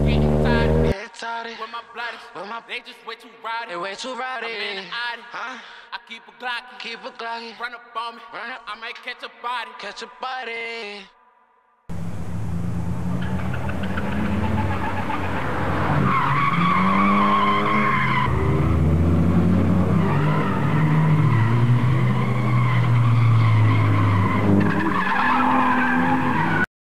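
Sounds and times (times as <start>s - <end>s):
car engines revving: 0.0s - 1.0s, 11.9s - 26.6s
tires squealing: 0.0s - 1.0s, 12.0s - 26.7s.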